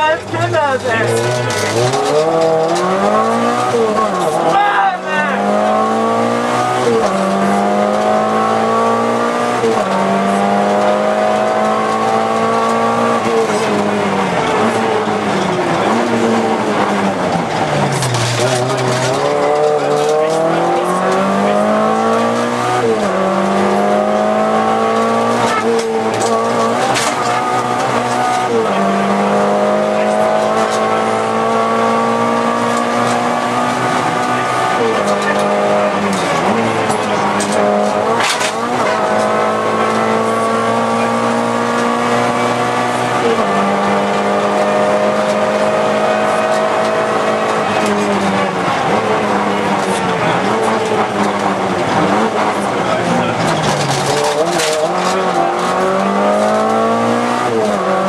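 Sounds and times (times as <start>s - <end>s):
car engine revving through gears: 0.0s - 58.0s.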